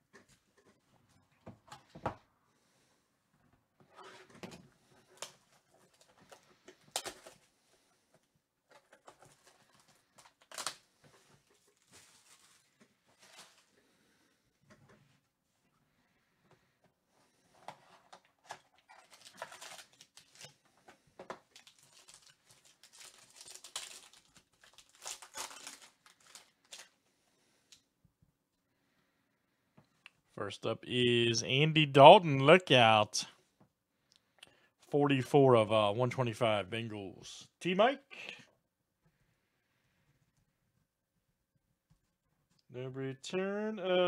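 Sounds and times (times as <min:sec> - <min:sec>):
plastic wrap crinkling and tearing: 0:09.0 - 0:10.9, 0:11.5 - 0:13.7, 0:18.4 - 0:20.6, 0:21.4 - 0:27.0.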